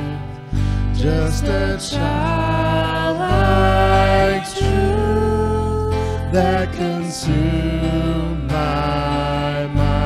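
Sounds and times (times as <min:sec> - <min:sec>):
acoustic guitar: 0:00.0 - 0:10.0
bass guitar: 0:00.0 - 0:10.0
keyboard: 0:00.0 - 0:10.0
voices singing: 0:00.0 - 0:10.0
worship band playing slow song: 0:00.0 - 0:10.0.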